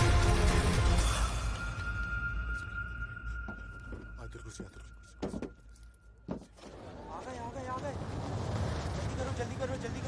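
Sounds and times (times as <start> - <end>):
metallic clinks and rattles: 4.6 - 6.6.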